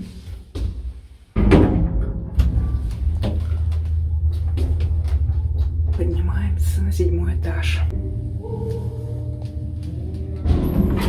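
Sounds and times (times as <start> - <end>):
lift rumbling hum: 0.0 - 11.0.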